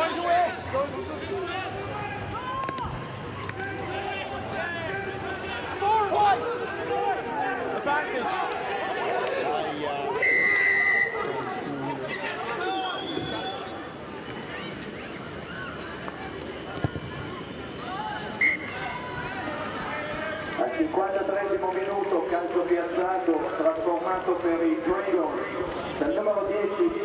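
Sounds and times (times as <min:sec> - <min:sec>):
players shouting: 0:00.0 - 0:14.7
crowd chatter: 0:00.0 - 0:27.0
referee's whistle blast: 0:10.2 - 0:11.2, 0:12.6 - 0:13.8, 0:18.4 - 0:18.7.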